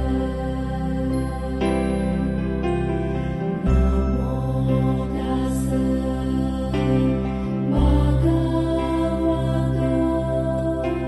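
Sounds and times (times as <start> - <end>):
voices chanting a drone: 0.0 - 2.6, 3.7 - 11.0
steady low tone: 0.0 - 11.0.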